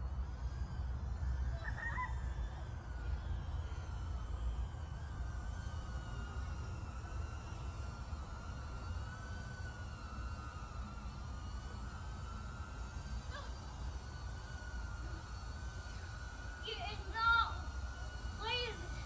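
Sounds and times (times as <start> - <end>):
drone motors whining: 0.0 - 19.0.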